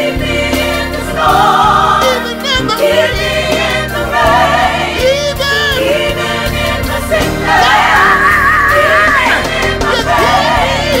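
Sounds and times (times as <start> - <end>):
instrumental backing: 0.0 - 11.0
vocal group singing gospel: 0.0 - 11.0.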